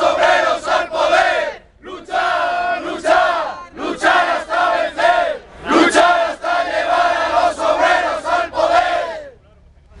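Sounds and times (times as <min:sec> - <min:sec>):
crowd chanting in unison: 0:00.0 - 0:09.3.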